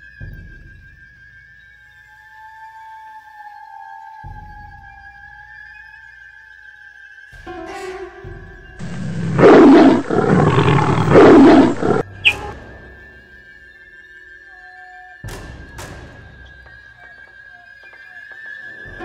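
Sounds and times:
background music: 0.0 - 19.0
big cat roaring: 8.8 - 12.0.

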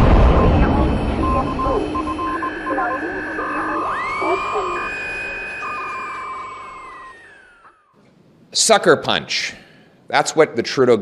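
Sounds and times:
explosion rumble: 0.0 - 3.8
short electronic beeps: 0.0 - 6.9
two-pitch alternating tones: 0.0 - 8.0
whistling tone sweeping: 0.0 - 8.0.

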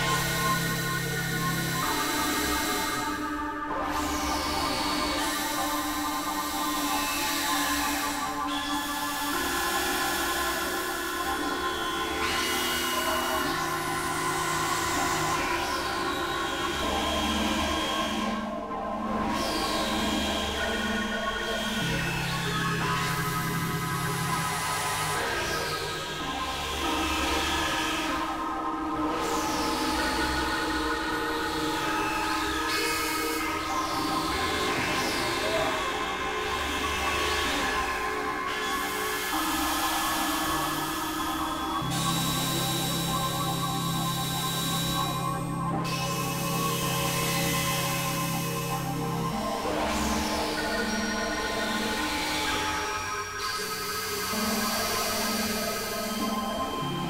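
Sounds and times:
layered electronic drone tones: 0.0 - 57.0.

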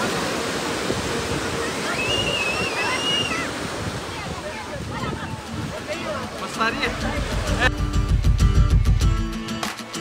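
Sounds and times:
surf breaking on beach: 0.0 - 7.7.

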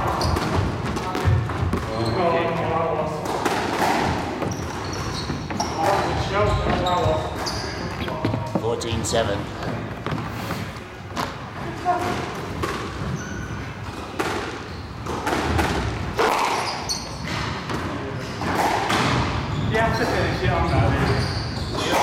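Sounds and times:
squash ball knocks and thuds: 0.0 - 2.0, 3.2 - 8.7, 13.9 - 19.5
trainers squeaking on court floor: 0.0 - 3.2, 3.8 - 22.0
players' footsteps: 0.0 - 13.2.

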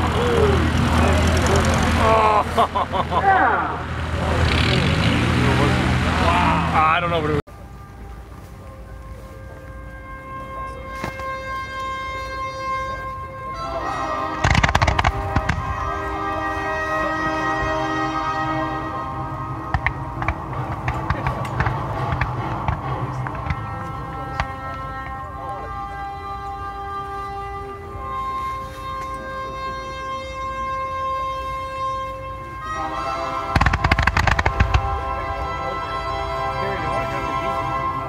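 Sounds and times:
music with long held notes: 7.2 - 38.0
firework bangs: 13.9 - 25.2, 32.7 - 37.9
firework pops and cracks: 14.4 - 15.8, 33.6 - 35.0.

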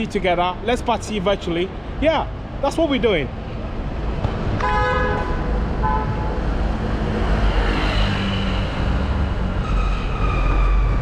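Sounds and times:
road traffic rumble: 0.0 - 11.0
car horn tooting: 4.6 - 6.3.

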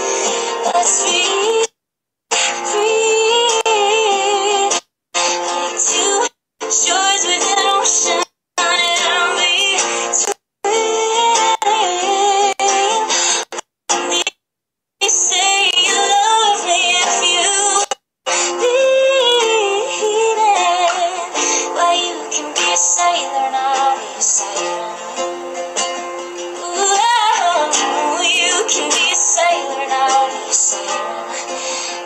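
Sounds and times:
acoustic guitar: 0.0 - 1.7, 2.3 - 14.3, 15.0 - 32.0
woman singing: 0.6 - 1.8, 2.6 - 4.8, 5.7 - 13.2, 14.0 - 14.4, 15.0 - 25.4, 26.6 - 31.6.

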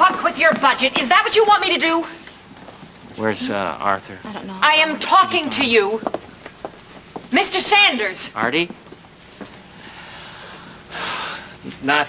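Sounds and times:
man speaking: 3.2 - 4.3
breath hiss: 9.7 - 11.6.

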